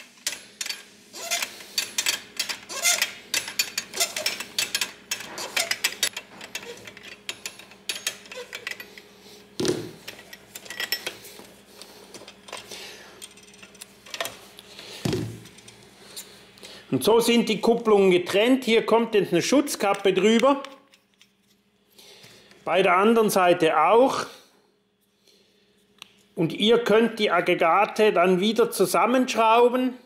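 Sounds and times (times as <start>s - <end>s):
spanners clinking on metal couplings: 0.2s - 9.0s, 10.0s - 11.2s.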